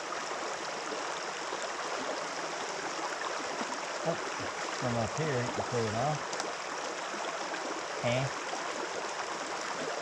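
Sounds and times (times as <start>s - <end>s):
creek water rushing over gravel: 0.0s - 10.0s.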